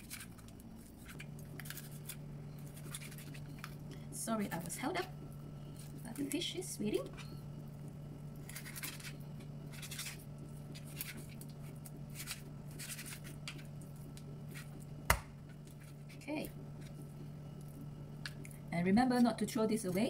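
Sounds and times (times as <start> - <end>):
knife scraping fish: 0.0 - 3.6, 8.4 - 11.4, 12.1 - 13.5
steady low hum: 0.0 - 20.0.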